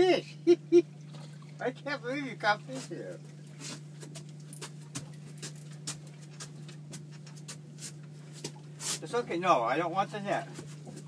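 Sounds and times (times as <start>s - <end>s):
outboard motor humming: 0.0s - 11.0s.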